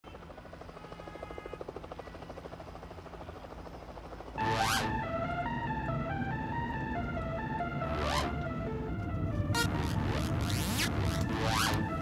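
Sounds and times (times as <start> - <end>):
helicopter rotor chopping: 0.2 - 12.0.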